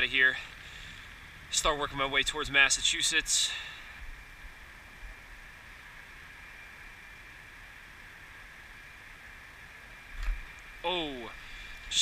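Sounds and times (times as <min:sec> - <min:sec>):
even hiss: 0:00.0 - 0:12.0
thin steady high tone: 0:00.0 - 0:12.0.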